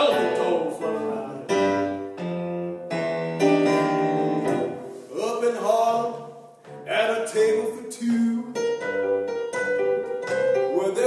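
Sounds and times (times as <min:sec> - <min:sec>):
piano playing sustained chords: 0:00.0 - 0:05.0.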